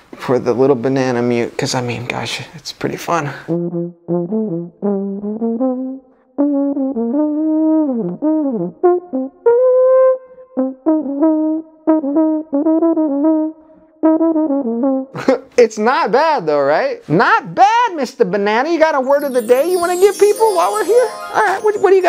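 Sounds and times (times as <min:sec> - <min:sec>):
muted trombone tune: 0:03.5 - 0:15.1, 0:19.2 - 0:22.0.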